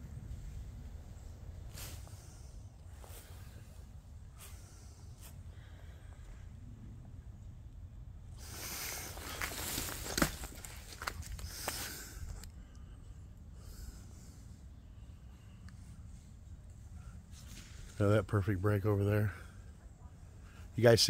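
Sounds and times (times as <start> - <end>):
footsteps crunching through dry leaves: 8.6 - 12.0.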